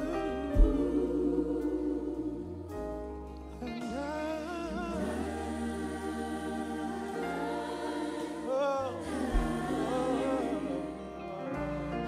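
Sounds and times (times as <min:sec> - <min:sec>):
lead voice singing: 0:00.0 - 0:02.8, 0:03.6 - 0:12.0
harmony singers: 0:00.0 - 0:12.0.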